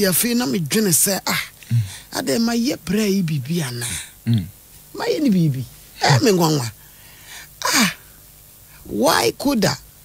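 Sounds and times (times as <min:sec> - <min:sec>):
person speaking: 0:00.0 - 0:06.8
breathy vocal burst: 0:01.7 - 0:02.1.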